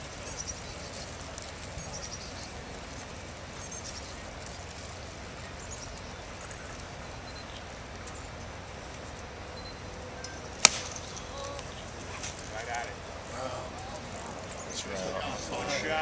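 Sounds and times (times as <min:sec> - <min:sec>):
faint murmur of spectators: 0:00.0 - 0:16.0
golf club striking ball: 0:10.2 - 0:11.2.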